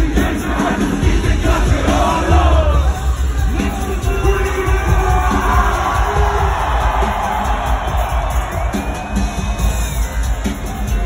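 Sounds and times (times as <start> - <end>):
crowd cheering and yelling: 0.0 - 11.0
live concert music with heavy bass: 0.0 - 11.0.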